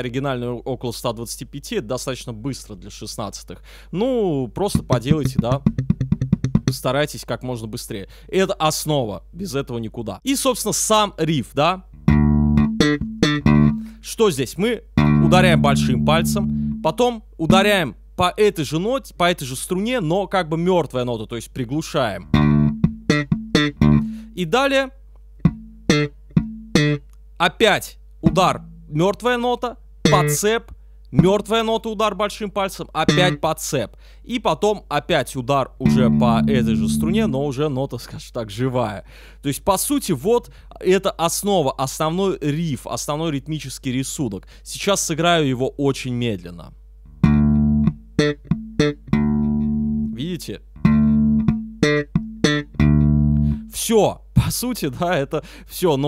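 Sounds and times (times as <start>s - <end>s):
slap bass guitar notes: 4.7s - 7.0s, 11.9s - 14.0s, 14.8s - 17.8s, 22.2s - 24.4s, 25.4s - 27.1s, 28.2s - 30.5s, 33.0s - 33.4s, 35.8s - 37.6s, 47.1s - 53.8s.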